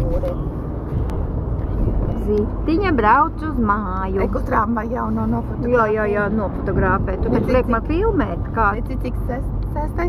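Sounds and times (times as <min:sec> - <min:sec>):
car road and engine rumble: 0:00.0 - 0:10.0
woman talking: 0:02.2 - 0:10.0.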